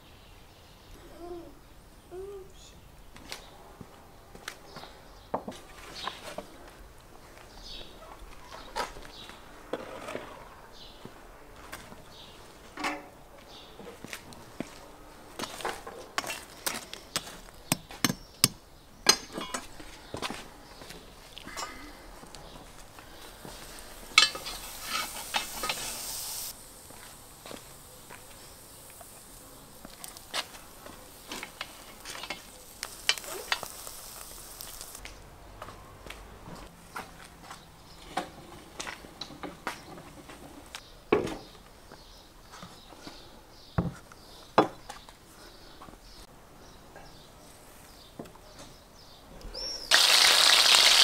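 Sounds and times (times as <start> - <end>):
meat sizzling over coals: 22.9 - 35.1, 49.6 - 51.0
metal poker scraping charcoal: 23.4 - 35.0.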